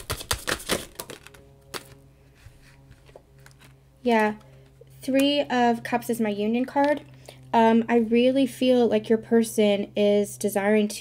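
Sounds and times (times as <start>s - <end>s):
cards being shuffled: 0.0s - 4.8s.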